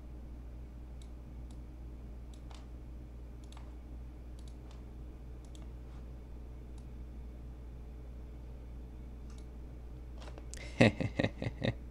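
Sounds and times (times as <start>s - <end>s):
low steady hum: 0.0s - 11.9s
computer mouse clicking: 2.3s - 2.7s, 3.4s - 4.8s, 5.4s - 5.7s, 9.2s - 9.5s.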